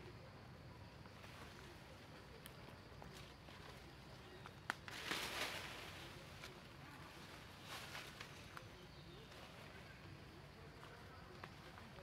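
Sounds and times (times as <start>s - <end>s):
leaves and branches rustling: 1.0s - 12.0s
twig snapping: 4.6s - 5.3s.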